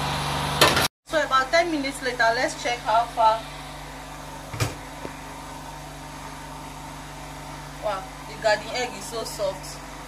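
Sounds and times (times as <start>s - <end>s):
pot boiling with hiss: 0.0s - 10.0s.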